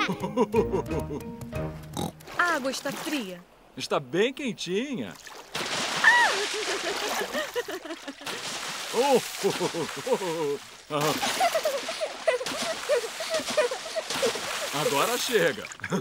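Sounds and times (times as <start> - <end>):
cartoon voices laughing: 0.0 - 1.2, 6.1 - 8.3, 9.0 - 14.6
cartoon water splashing: 5.1 - 16.0.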